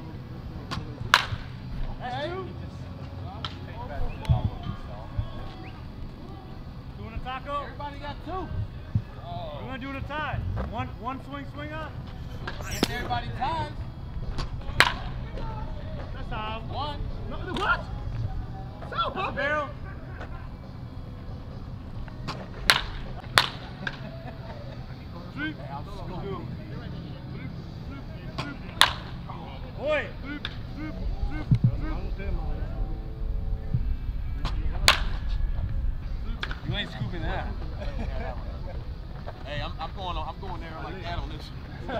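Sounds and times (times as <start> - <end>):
baseball bat cracking ball: 0.7 - 1.6, 14.3 - 15.4, 22.1 - 24.1, 28.4 - 29.3, 34.4 - 35.4, 36.4 - 36.7.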